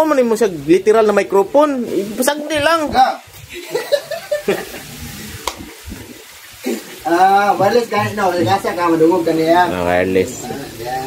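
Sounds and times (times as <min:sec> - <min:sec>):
sharp microphone clicks: 0:05.4 - 0:06.1.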